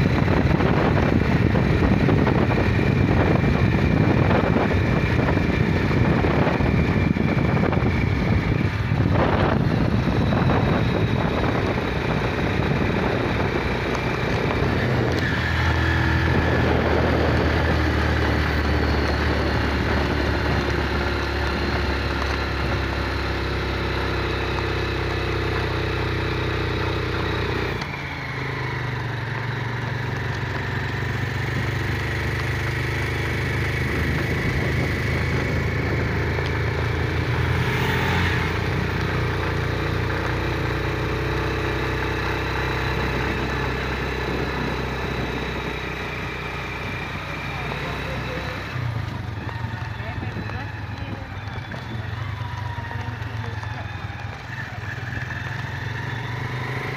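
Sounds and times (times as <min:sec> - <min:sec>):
road and wind noise: 0:00.0 - 0:56.9
small motorcycle engine running: 0:00.0 - 0:56.9.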